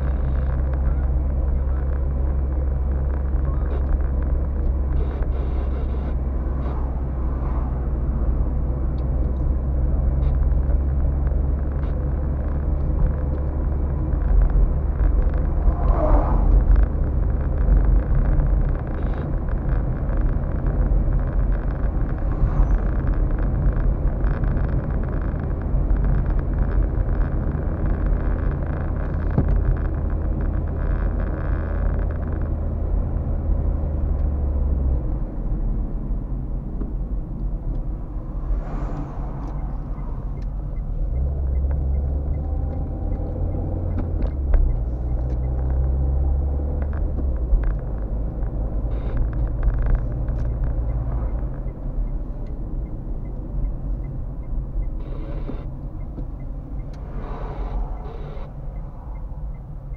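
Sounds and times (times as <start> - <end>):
car engine and tyre drone: 0.0 - 59.9.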